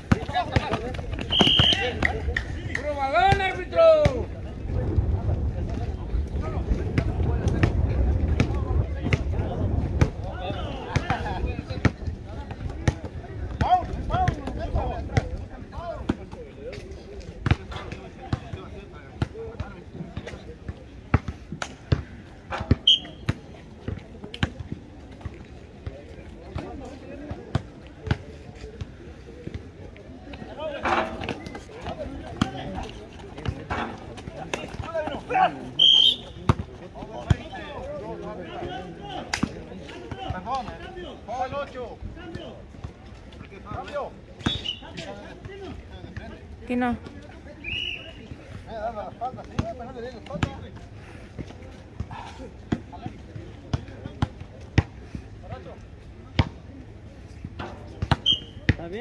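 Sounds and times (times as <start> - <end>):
basketball bouncing on asphalt: 0.0 - 2.2, 36.3 - 37.5
players' voices: 0.0 - 59.0
wind rumble on microphone: 4.0 - 15.8.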